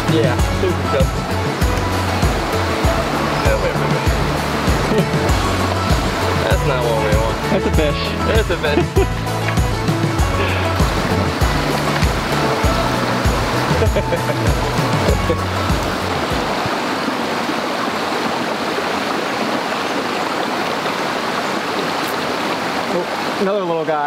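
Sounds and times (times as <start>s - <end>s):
background music with low bass: 0.0s - 16.7s
mountain stream rushing: 0.0s - 24.0s.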